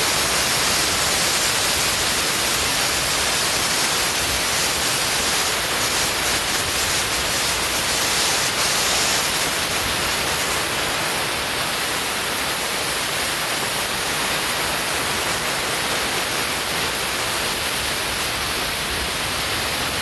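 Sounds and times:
texture sprayer hissing: 0:00.0 - 0:20.0.

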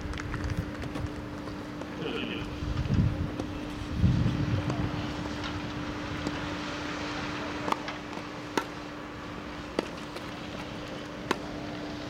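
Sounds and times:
steady low hum: 0:00.0 - 0:12.0
racket striking ball: 0:07.6 - 0:08.8, 0:09.7 - 0:11.6
tennis ball bouncing on grass: 0:07.7 - 0:08.8, 0:09.7 - 0:11.5.

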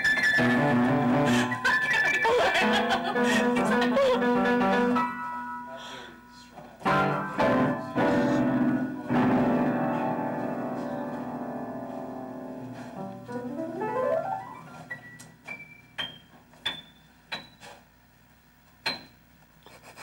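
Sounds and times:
upright piano playing: 0:00.0 - 0:17.0.

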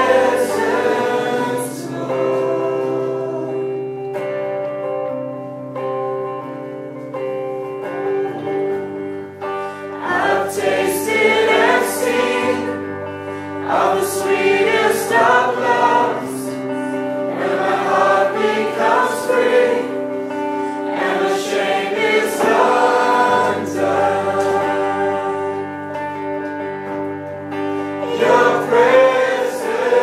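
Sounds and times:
electric guitar sustained chords: 0:00.0 - 0:30.0.

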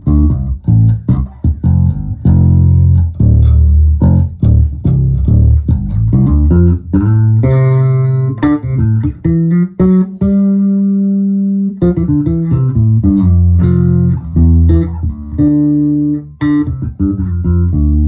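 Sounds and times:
electric bass plucked notes: 0:00.0 - 0:18.0.

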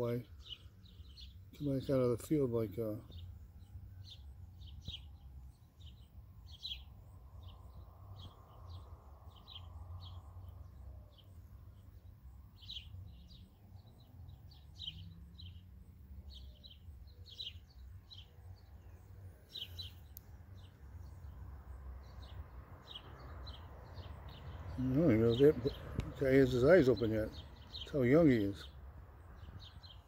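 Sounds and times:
small bird chirping: 0:00.0 - 0:30.0.

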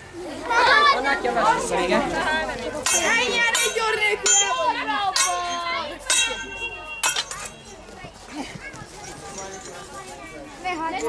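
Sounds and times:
murmur of voices: 0:00.0 - 0:11.0
steel swords clashing: 0:02.8 - 0:07.9.

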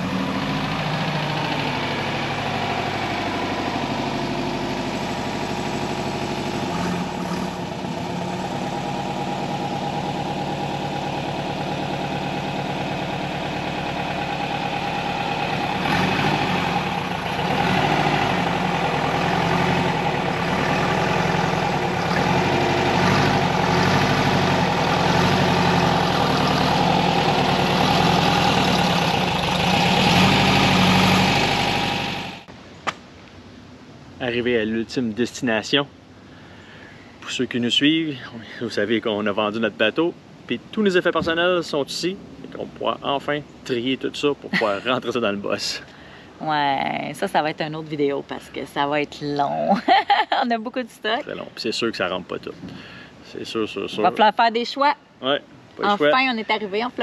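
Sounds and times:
van engine driving slowly: 0:00.0 - 0:57.0.

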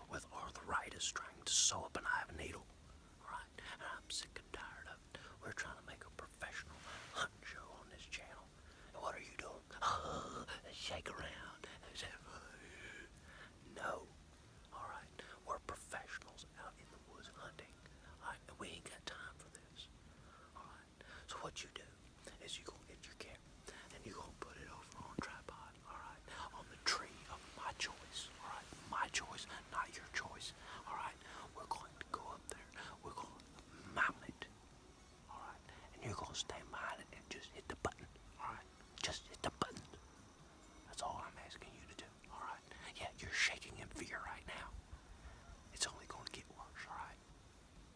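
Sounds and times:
man whispering: 0:00.0 - 0:40.1, 0:40.9 - 0:45.0, 0:45.6 - 0:47.4.

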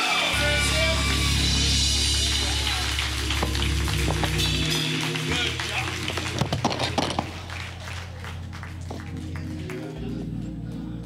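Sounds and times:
church band music: 0:00.0 - 0:11.0.

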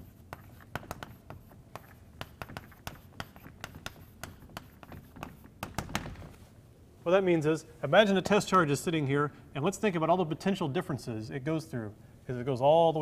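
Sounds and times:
chalk tapping and scraping: 0:00.0 - 0:05.9.

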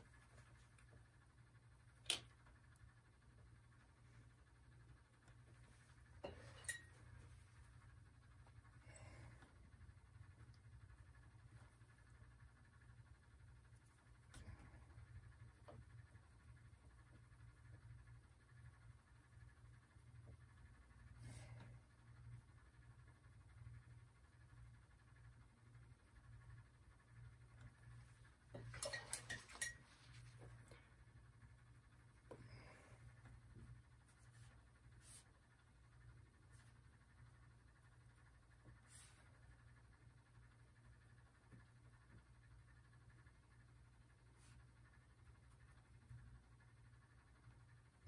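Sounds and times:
low steady hum: 0:00.0 - 0:48.0.

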